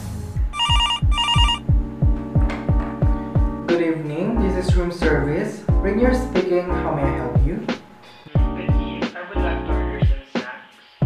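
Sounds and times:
telephone ringing: 0.6s - 1.6s
music with deep beat: 1.1s - 3.8s, 4.5s - 6.6s, 7.3s - 10.5s.

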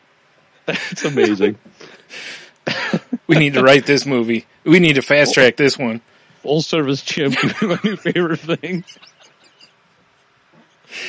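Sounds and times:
faint breathy laughter: 0.7s - 4.1s, 7.3s - 9.7s
man talking: 0.7s - 9.2s.

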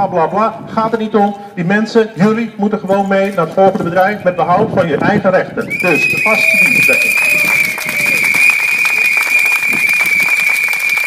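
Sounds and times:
high-pitched whistle-like tone: 5.6s - 11.0s
crowd applauding: 5.8s - 11.0s.

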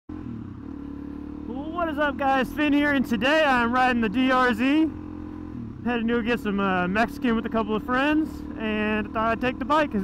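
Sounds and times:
motorcycle engine cruising: 0.1s - 10.0s.

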